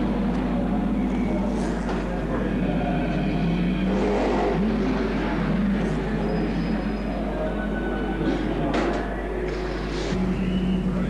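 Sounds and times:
racing car engine running: 0.0 - 11.0.

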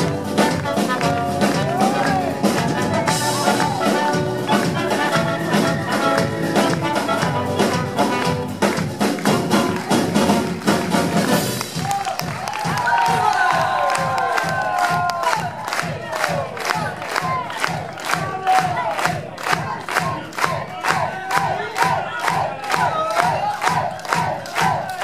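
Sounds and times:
clarinet: 0.0 - 8.7
trumpet: 0.0 - 12.2
live band playing upbeat music: 0.0 - 21.0.

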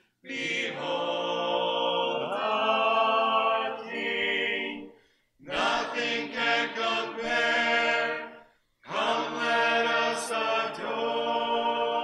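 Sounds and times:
vocal music with sustained notes: 0.0 - 12.0.

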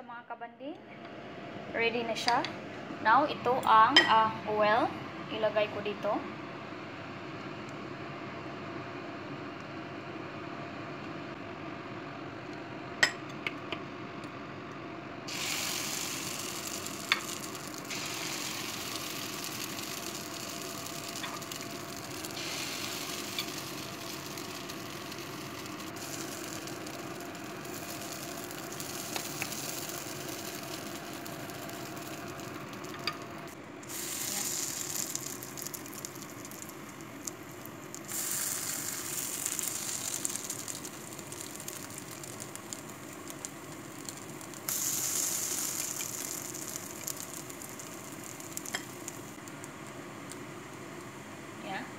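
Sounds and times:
patties sizzling in oil: 15.2 - 51.8.

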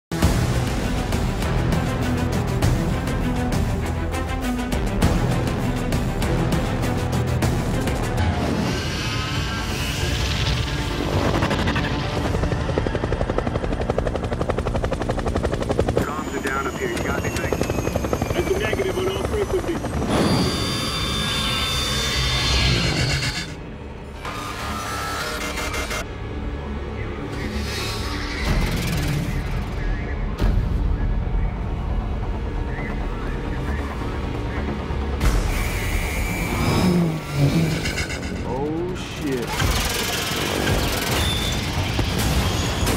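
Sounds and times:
film music: 0.1 - 42.9
helicopter rotor chop: 9.6 - 23.8, 28.4 - 30.6, 31.6 - 42.9
mechanical whir: 15.9 - 26.0, 39.4 - 42.9
voices: 16.0 - 20.0.

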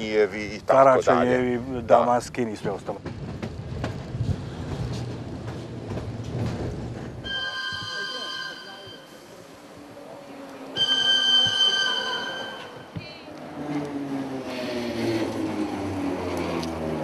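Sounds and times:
train running rumble: 0.4 - 7.4
high-pitched train tones: 7.2 - 9.6, 10.7 - 13.4.

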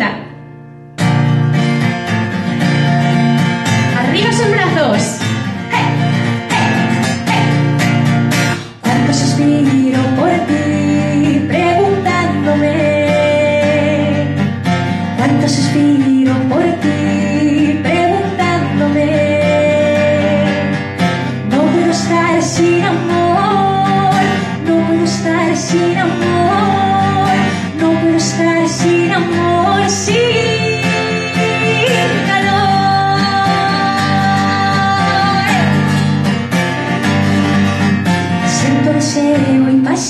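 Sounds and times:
strummed acoustic guitar: 0.0 - 40.0
woman singing: 3.8 - 36.0, 38.3 - 40.0.

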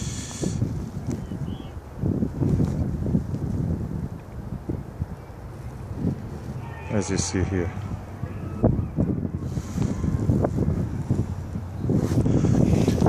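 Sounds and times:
wind buffeting microphone: 0.0 - 13.0
phone brushing jacket fabric: 11.9 - 13.0.

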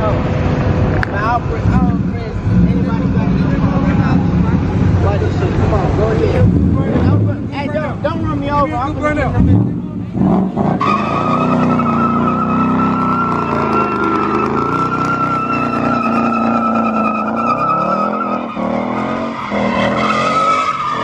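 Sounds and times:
car engine at high revs: 0.0 - 21.0
tyres squealing: 10.4 - 21.0.

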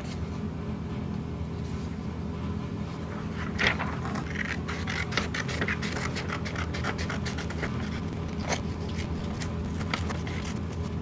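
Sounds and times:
scissors snipping paper: 3.4 - 11.0.

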